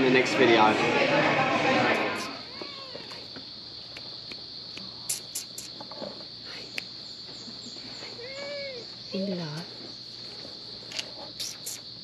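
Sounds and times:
insects trilling: 0.0s - 12.0s
sharp high chirps: 4.8s - 5.8s.

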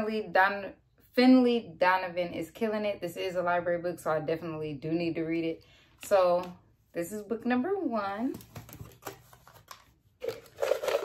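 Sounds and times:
paper slips rattling in plastic jar: 10.2s - 11.0s.

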